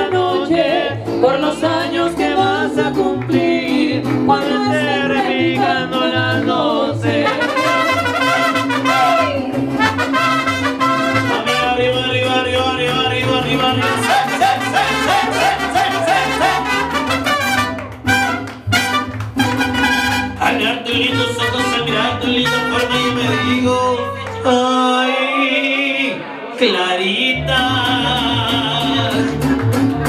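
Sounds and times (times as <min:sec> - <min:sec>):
mariachi band playing: 0:00.0 - 0:30.0
trumpets playing melody: 0:07.2 - 0:12.2, 0:13.7 - 0:24.7.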